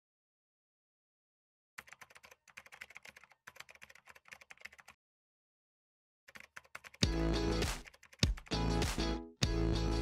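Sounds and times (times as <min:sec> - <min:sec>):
keyboard typing clicks: 0:01.8 - 0:04.9, 0:06.3 - 0:08.6.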